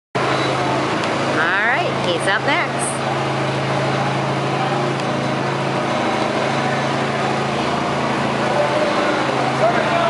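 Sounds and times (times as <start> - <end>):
small engine idling: 0.2 - 10.0.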